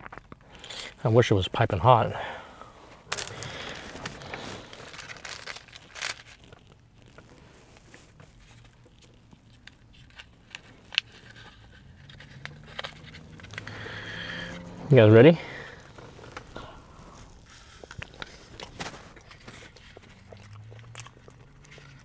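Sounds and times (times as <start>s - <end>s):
food packaging rustling: 2.9s - 14.1s, 15.6s - 22.0s.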